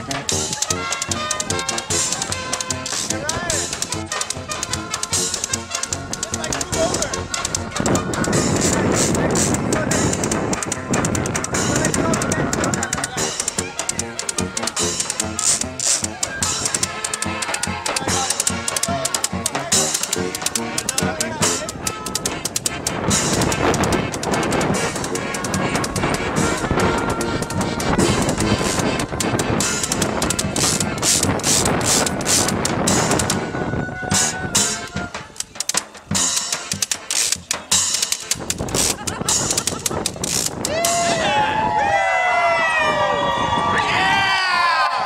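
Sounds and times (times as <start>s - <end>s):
saxophone: 0.0s - 35.4s
accordion: 0.0s - 40.5s
bass drum and cymbal beat: 0.0s - 41.4s.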